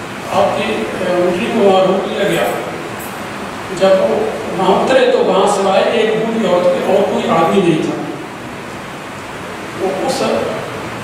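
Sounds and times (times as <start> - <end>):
room and recording hiss: 0.0 - 11.0
man speaking: 0.3 - 2.8, 3.7 - 8.2, 9.8 - 10.7.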